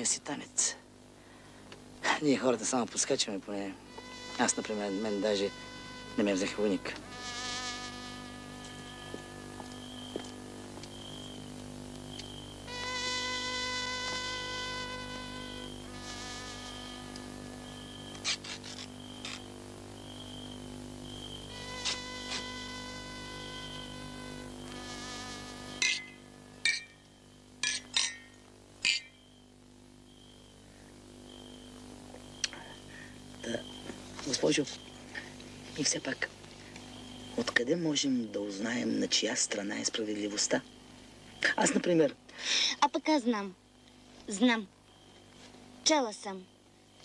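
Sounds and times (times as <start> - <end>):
buzzing soundtrack drone: 3.9 - 11.9, 12.5 - 18.2, 21.4 - 27.7.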